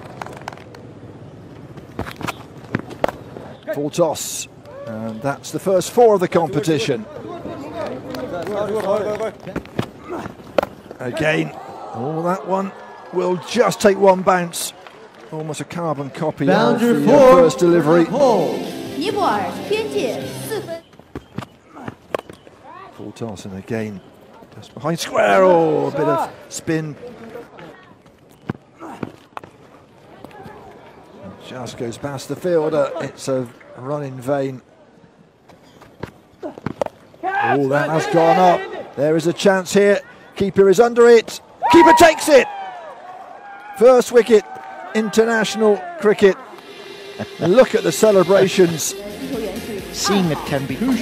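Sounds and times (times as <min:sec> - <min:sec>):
man talking: 0:15.4 - 0:19.4, 0:47.2 - 0:51.0.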